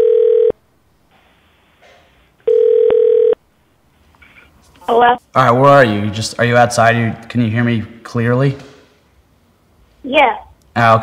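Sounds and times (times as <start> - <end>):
telephone ringback tone: 0.0 - 0.6, 2.4 - 3.4.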